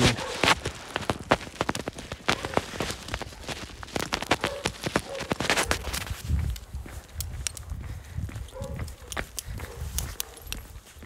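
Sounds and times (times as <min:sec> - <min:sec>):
microphone rubbing on clothing: 0:00.0 - 0:07.0
sharp clicks: 0:00.0 - 0:07.8.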